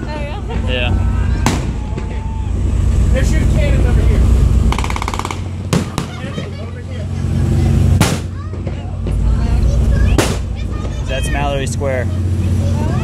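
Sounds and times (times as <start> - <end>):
boat engine droning: 0.0 - 13.0.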